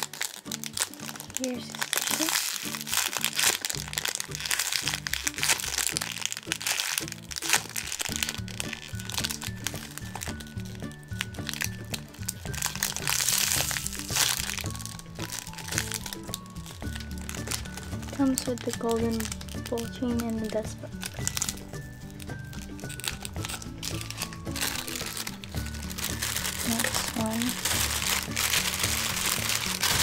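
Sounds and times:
background music: 0.0 - 30.0
plastic bag crinkling: 0.0 - 30.0.

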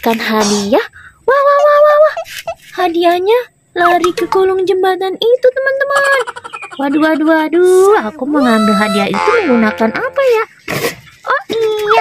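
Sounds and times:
person talking: 0.0 - 6.2, 6.8 - 10.5.

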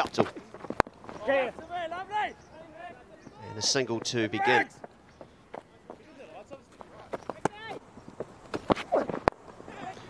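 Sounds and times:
distant voices: 0.0 - 10.0.

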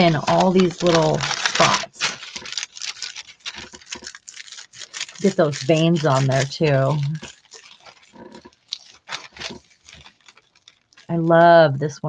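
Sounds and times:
paper rubbing and rustling: 0.0 - 11.4.

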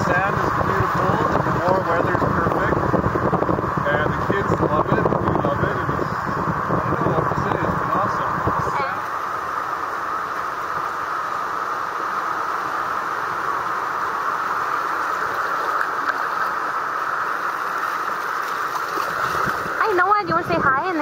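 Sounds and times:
ocean surf breaking on shore: 0.0 - 21.0.

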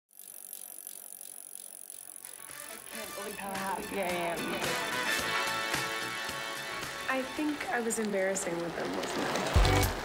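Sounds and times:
bicycle freewheel ticking: 0.1 - 6.4.

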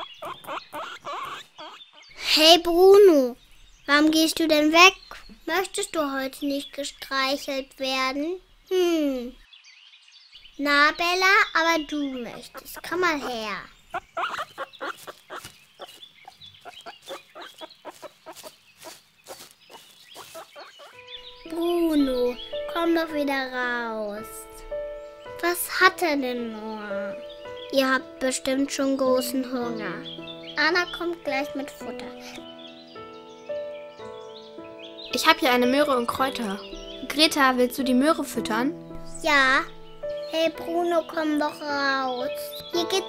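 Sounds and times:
guinea pig squeaking: 0.0 - 2.2, 11.3 - 21.6.

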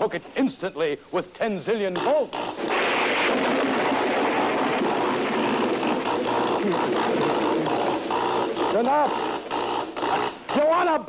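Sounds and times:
electrical zapping hiss: 2.1 - 10.0.

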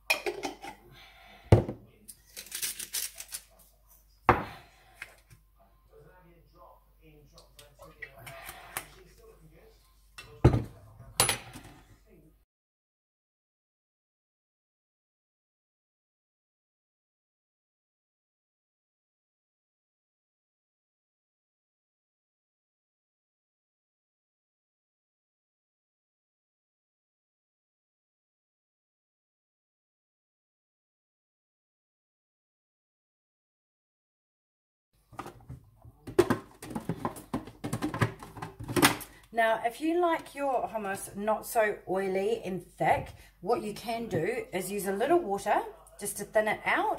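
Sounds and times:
plastic clicks and knocks: 35.2 - 39.1.

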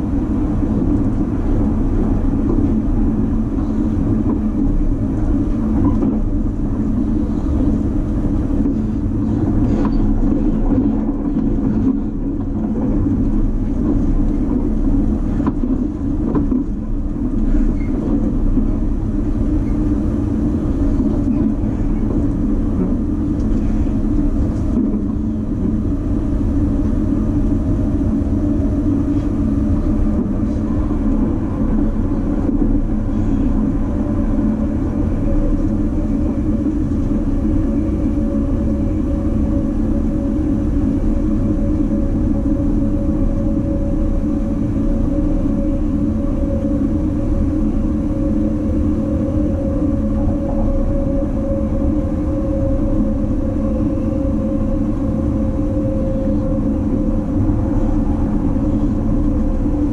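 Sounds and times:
train wheels rumbling on rail: 0.0 - 59.9.

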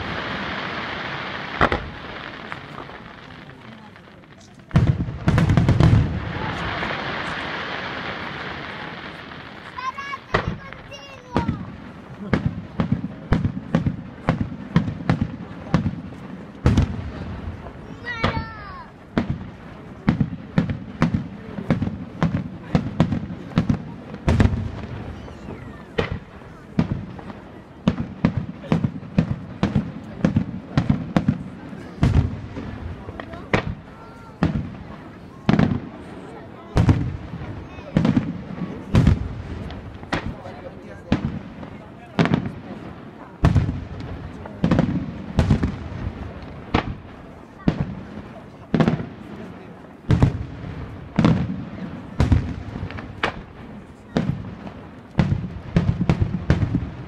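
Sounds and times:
fireworks bursting with rumbling echo: 0.0 - 57.0.

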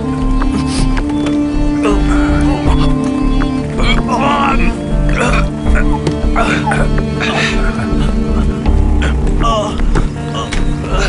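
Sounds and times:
film music with held tones: 0.0 - 11.0.

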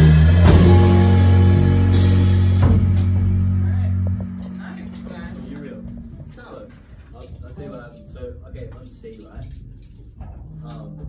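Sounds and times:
drum and cymbal hit: 0.0 - 6.7
higher sustained note: 0.0 - 6.8
low bass note ringing: 0.0 - 6.9.

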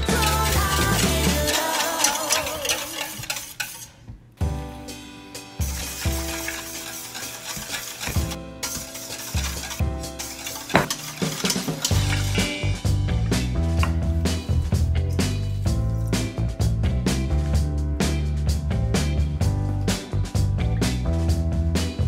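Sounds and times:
whisk scraping metal bowl: 0.0 - 4.1, 5.6 - 12.6
background music with steady beat: 4.0 - 22.0.

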